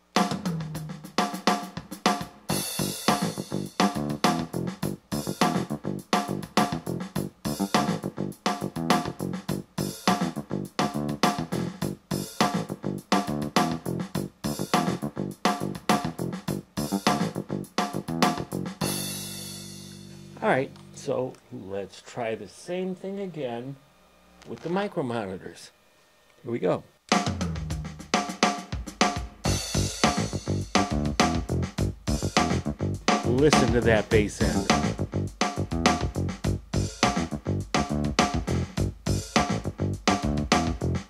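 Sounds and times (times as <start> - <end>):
drum machine rhythm: 0.0 - 20.4, 27.1 - 41.0.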